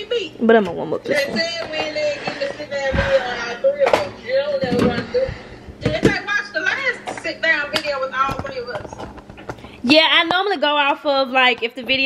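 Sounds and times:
indistinct voices talking: 0:00.0 - 0:09.0.

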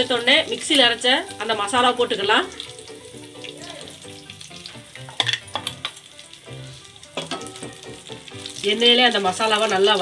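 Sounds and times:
hot oil sizzling: 0:00.0 - 0:10.0.

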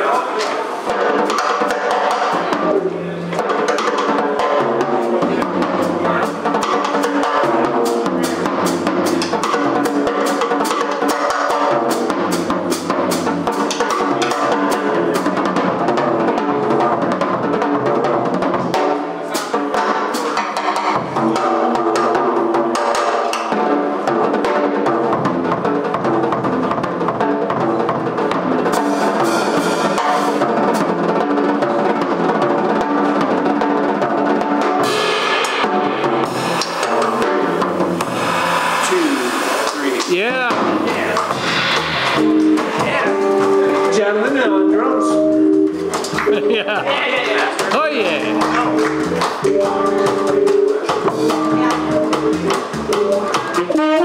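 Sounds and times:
jazz drum solo: 0:00.0 - 0:54.0
held bass notes: 0:35.8 - 0:54.0.

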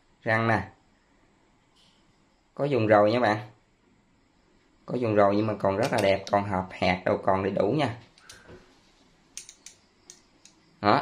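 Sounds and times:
faint metallic clicks of pliers: 0:08.2 - 0:08.5, 0:09.4 - 0:10.6.

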